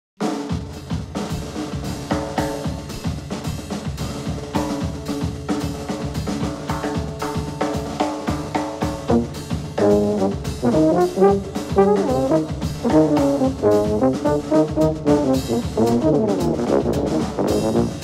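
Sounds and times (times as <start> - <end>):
big band jazz: 0.2 - 18.0
drum kit beat: 0.2 - 18.0.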